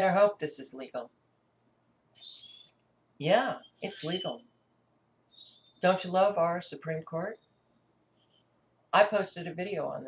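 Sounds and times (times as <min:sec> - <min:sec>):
small bird chirp: 0:02.2 - 0:02.8, 0:03.6 - 0:04.6, 0:05.3 - 0:06.0, 0:07.3 - 0:08.8.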